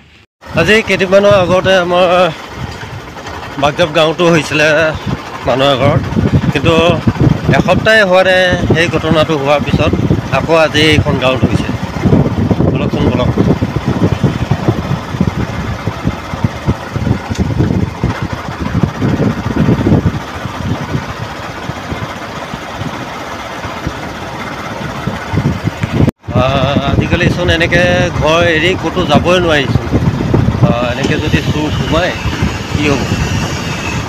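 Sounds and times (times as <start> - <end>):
scooter engine: 0.5 - 34.0
microphone rumble: 4.8 - 23.0, 23.7 - 34.0.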